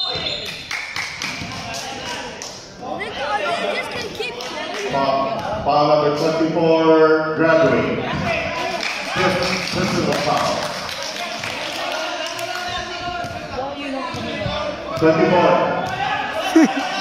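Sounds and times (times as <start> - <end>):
overlapping chatter: 0.0 - 6.5, 7.7 - 17.0.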